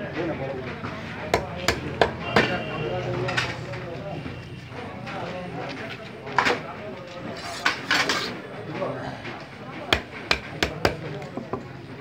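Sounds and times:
knife chopping fish on block: 0:09.9 - 0:11.1.

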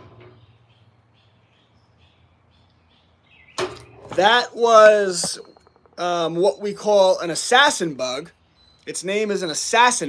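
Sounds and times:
faint bird chirps: 0:00.2 - 0:04.2, 0:08.3 - 0:09.0.

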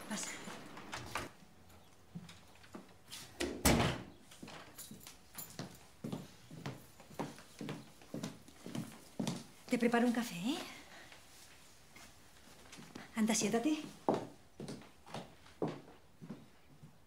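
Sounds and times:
door shutting with thud: 0:03.4 - 0:04.1
footsteps on wooden floor: 0:04.4 - 0:10.8, 0:13.7 - 0:17.0.

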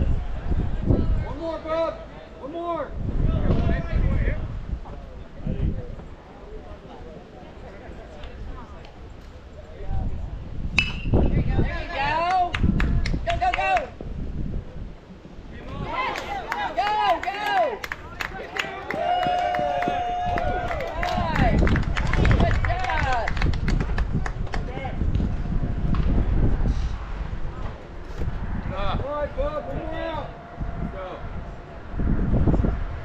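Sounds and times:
people shouting and calling out: 0:15.5 - 0:21.6, 0:28.7 - 0:31.8
low rumble: 0:23.3 - 0:33.0.

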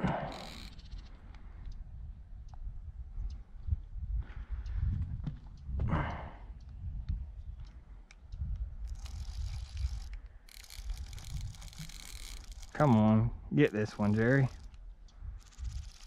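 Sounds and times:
fishing reel clicking: 0:00.1 - 0:01.4, 0:08.8 - 0:13.1, 0:13.7 - 0:16.0
wind on microphone: 0:00.4 - 0:13.5, 0:14.2 - 0:16.0.

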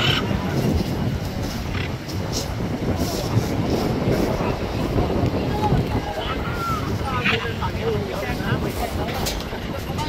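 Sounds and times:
wind noise on microphone: 0:00.0 - 0:10.0.

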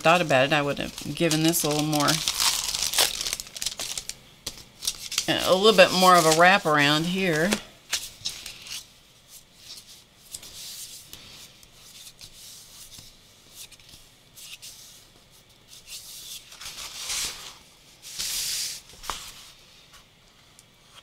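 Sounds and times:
hands rustling paper: 0:00.0 - 0:08.8.

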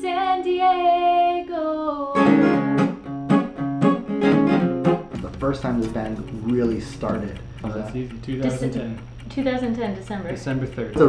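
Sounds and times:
woman singing: 0:00.0 - 0:02.6
acoustic guitar and ukulele chord: 0:02.2 - 0:05.1.

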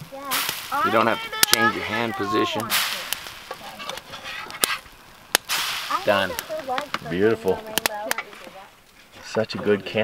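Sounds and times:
metal spatula scraping griddle: 0:02.8 - 0:04.8.

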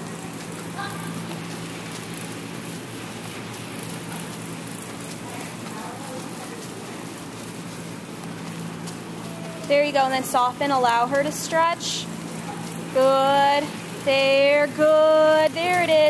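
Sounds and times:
low continuous hum: 0:00.0 - 0:16.0
crackly hiss: 0:00.1 - 0:16.0.

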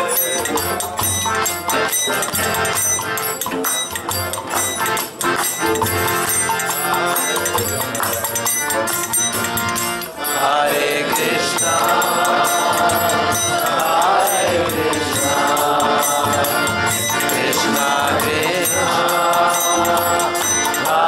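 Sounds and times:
harmonium: 0:00.0 - 0:21.0
percussion beat: 0:00.0 - 0:21.0
group chanting: 0:06.2 - 0:07.9, 0:10.2 - 0:21.0.

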